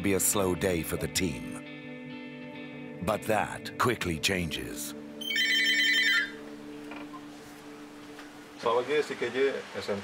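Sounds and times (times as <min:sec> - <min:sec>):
telephone ringing: 0:05.2 - 0:06.4.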